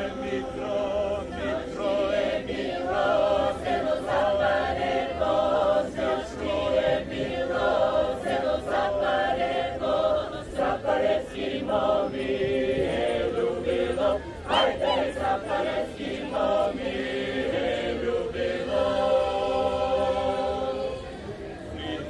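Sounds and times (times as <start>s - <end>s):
group singing folk song: 0.0s - 22.0s.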